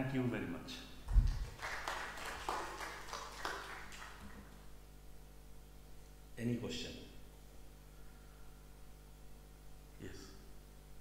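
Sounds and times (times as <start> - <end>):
steady low hum: 0.0 - 11.0
light scattered applause: 1.1 - 4.5.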